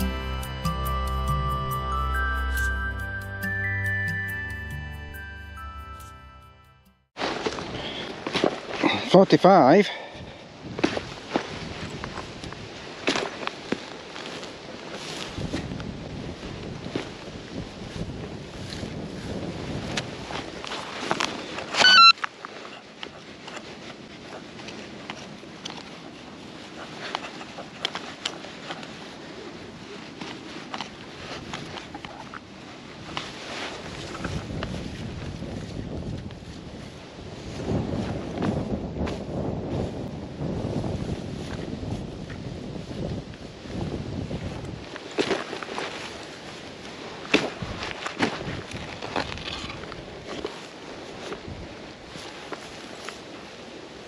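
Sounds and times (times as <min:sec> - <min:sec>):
wind on microphone: 0:10.1 - 0:13.0, 0:14.2 - 0:22.1, 0:22.7 - 0:54.0
clothing rustle: 0:10.7 - 0:54.0
electronic beeping: 0:21.8 - 0:22.2.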